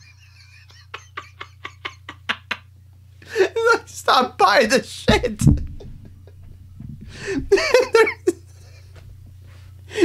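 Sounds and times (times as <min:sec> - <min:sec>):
man's stifled laughter: 0:00.0 - 0:02.7, 0:05.1 - 0:09.0
low electrical hum: 0:00.0 - 0:10.0.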